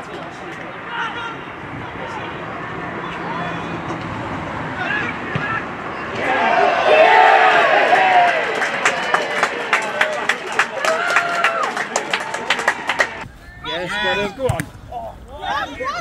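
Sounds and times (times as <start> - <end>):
close voices talking: 0.0 - 7.8, 8.4 - 16.0
crowd cheering: 0.1 - 16.0
shouts: 4.8 - 9.5, 10.7 - 14.6, 15.4 - 16.0
crowd clapping: 7.0 - 13.2.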